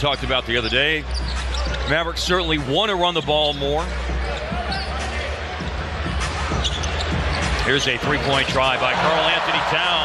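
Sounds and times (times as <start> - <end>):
sneakers squeaking: 0.5 - 7.9.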